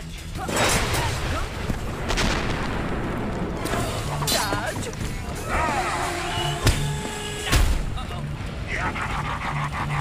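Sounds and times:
booming explosions: 0:00.6 - 0:03.8.

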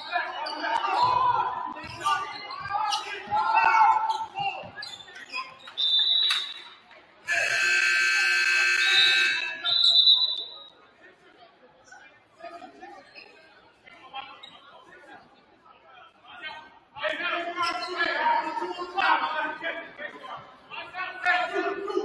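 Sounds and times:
faint crowd chatter: 0:00.0 - 0:22.0
scoreboard horn: 0:07.3 - 0:09.6
referee's whistle blast: 0:07.3 - 0:10.7.

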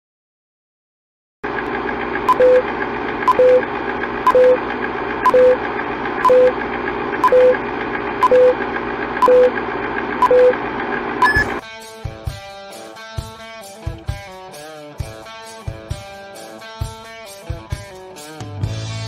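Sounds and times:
higher beep: 0:02.3 - 0:02.6, 0:03.3 - 0:03.6, 0:04.3 - 0:04.6, 0:05.2 - 0:05.6, 0:06.2 - 0:06.6, 0:07.2 - 0:07.6, 0:08.2 - 0:08.6, 0:09.2 - 0:09.6, 0:10.2 - 0:10.6, 0:11.2 - 0:11.6
short low beeps: 0:02.3 - 0:02.6, 0:03.3 - 0:03.6, 0:04.3 - 0:04.6, 0:05.2 - 0:05.6, 0:06.2 - 0:06.6, 0:07.2 - 0:07.6, 0:08.2 - 0:08.6, 0:09.2 - 0:09.6, 0:10.2 - 0:10.6, 0:11.2 - 0:11.6.

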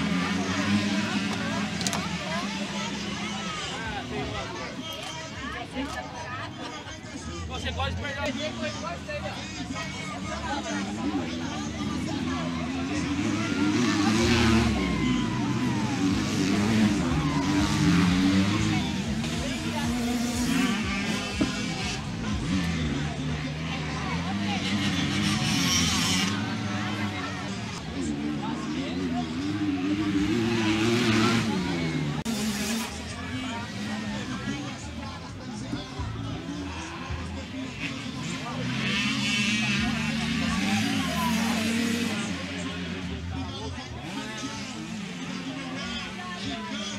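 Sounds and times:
dirt bike engines revving: 0:00.0 - 0:46.9.

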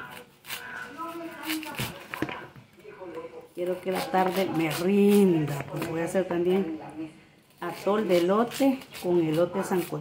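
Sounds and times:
knife scraping corn kernels: 0:00.0 - 0:02.1, 0:03.6 - 0:05.6, 0:07.5 - 0:10.0
woman's voice: 0:03.6 - 0:10.0.

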